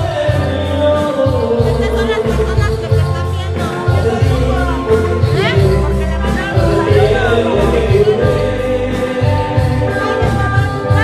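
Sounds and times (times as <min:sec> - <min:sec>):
band playing live: 0:00.0 - 0:11.0
people singing: 0:00.0 - 0:11.0.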